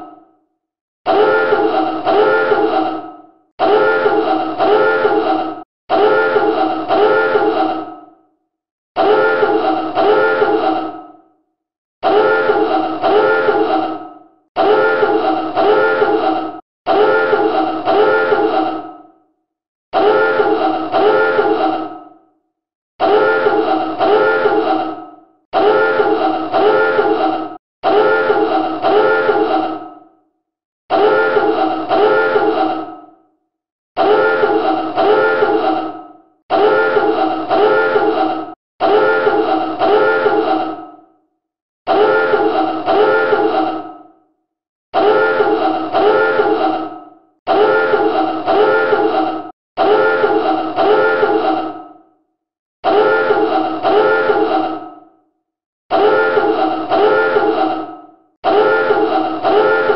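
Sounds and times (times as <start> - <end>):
klaxon alarm blasts: 1.1 - 2.7, 3.6 - 5.2, 5.9 - 7.5, 9.0 - 10.6, 12.0 - 13.8, 14.6 - 16.3, 16.9 - 18.5, 20.0 - 21.6, 23.0 - 24.7, 25.6 - 27.2, 27.8 - 29.6, 34.0 - 35.6, 38.8 - 40.5, 45.0 - 46.6, 47.5 - 49.2, 49.8 - 51.4, 52.8 - 54.5, 55.9 - 57.7, 58.4 - 59.9.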